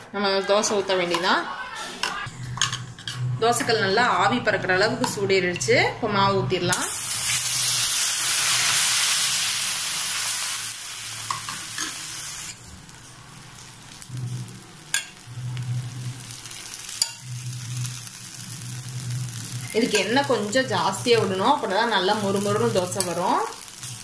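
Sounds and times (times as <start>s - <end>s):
batter sizzling on hot griddle: 6.8s - 24.0s.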